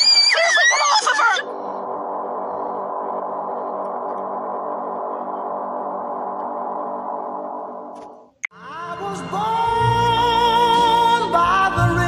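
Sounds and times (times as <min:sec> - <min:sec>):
high-pitched screaming and shouting: 0:00.0 - 0:01.6
sustained musical drone: 0:01.4 - 0:08.0.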